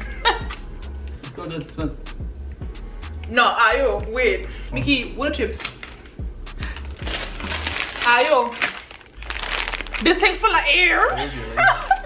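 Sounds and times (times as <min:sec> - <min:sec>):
background music with bass line: 0:00.0 - 0:08.1
foil chip bag crinkling: 0:05.6 - 0:10.4.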